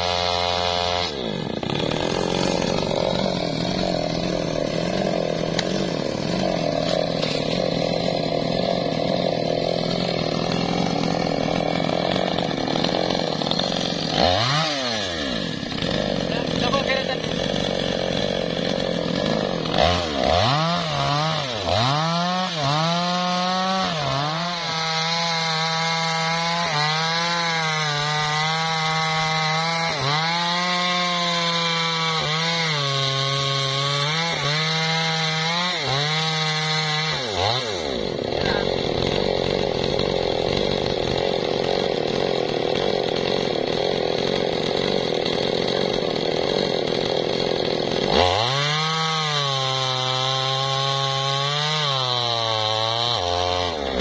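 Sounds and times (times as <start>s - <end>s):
chainsaw cutting wood: 0.0s - 54.0s.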